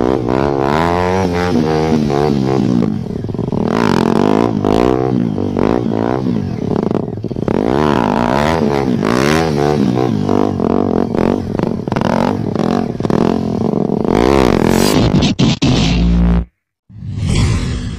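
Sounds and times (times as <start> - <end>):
motorcycle engine revving: 0.0 - 16.5.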